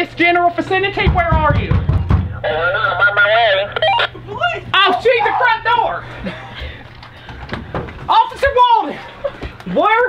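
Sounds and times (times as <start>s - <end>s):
tinny walkie-talkie voice: 2.4s - 4.1s
radio chirp: 2.4s - 4.2s.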